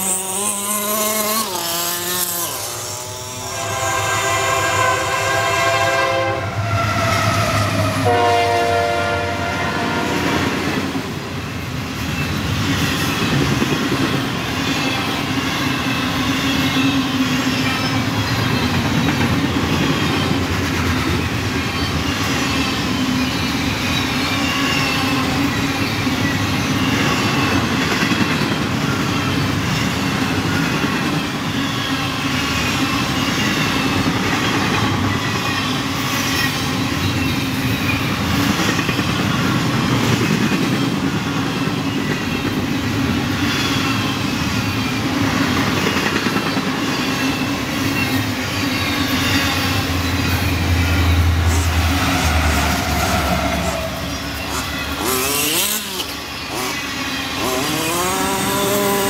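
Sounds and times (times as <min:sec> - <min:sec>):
train horn blasts: 0:00.0 - 0:10.5
train passing: 0:00.0 - 0:59.0.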